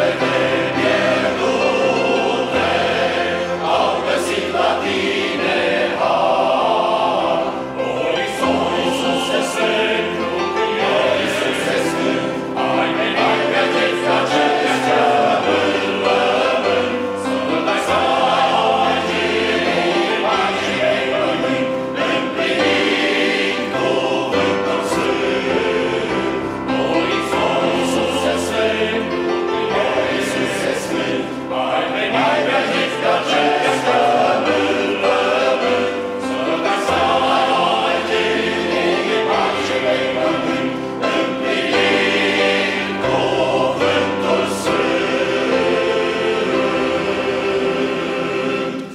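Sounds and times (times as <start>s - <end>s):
men's choir singing unaccompanied: 0.0s - 48.9s.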